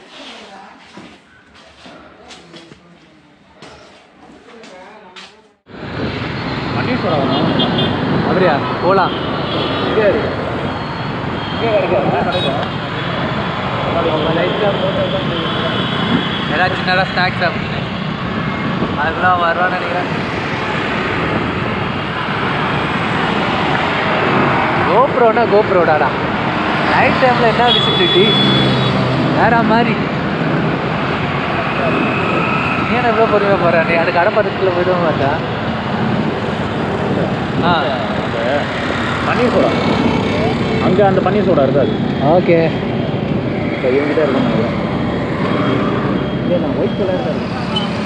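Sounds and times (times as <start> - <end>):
city traffic noise: 0.0 - 48.0.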